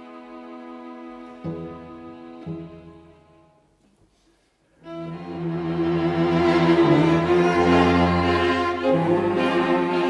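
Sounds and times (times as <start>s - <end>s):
string ensemble chords: 0.0s - 3.7s, 4.8s - 10.0s.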